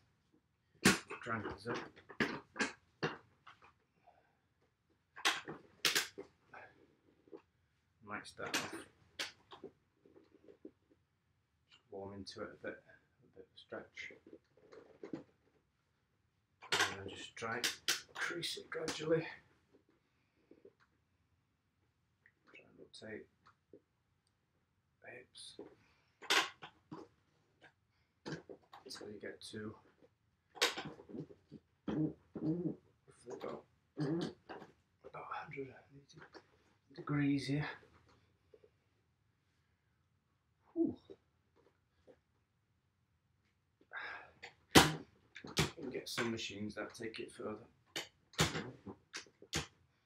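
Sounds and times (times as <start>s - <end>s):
man speaking low words: 1.2s - 1.9s, 8.0s - 8.8s, 11.9s - 14.1s, 16.8s - 19.4s, 22.9s - 23.3s, 25.0s - 25.6s, 28.9s - 29.8s, 35.1s - 36.1s, 37.0s - 37.8s, 45.7s - 47.7s.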